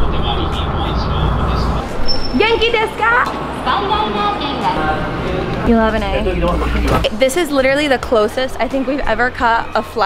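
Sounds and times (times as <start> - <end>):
indistinct crowd voices: 0.0 - 10.0.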